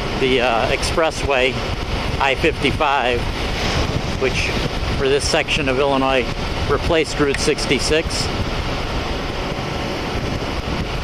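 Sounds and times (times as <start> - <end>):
motorcycle engine drone: 0.0 - 11.0
wind buffeting microphone: 0.0 - 11.0.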